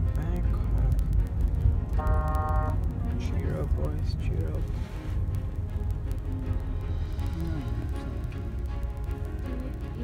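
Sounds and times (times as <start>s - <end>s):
car cabin road rumble: 0.0s - 10.0s
car horn toot: 2.0s - 2.8s.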